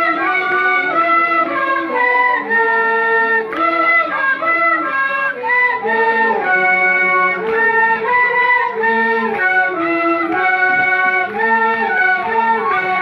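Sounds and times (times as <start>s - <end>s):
cane flutes playing a melody: 0.0s - 13.0s.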